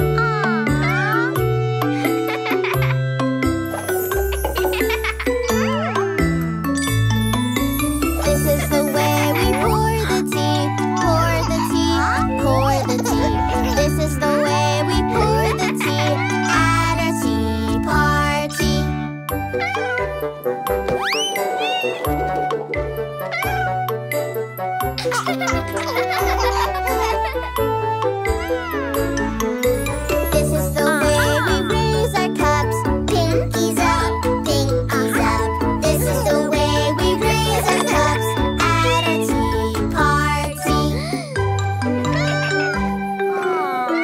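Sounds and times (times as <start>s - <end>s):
instrumental children's song: 0.0s - 44.0s
cartoon kitten meowing: 16.0s - 16.7s, 19.6s - 20.1s, 21.0s - 22.2s, 23.2s - 23.9s, 42.1s - 44.0s.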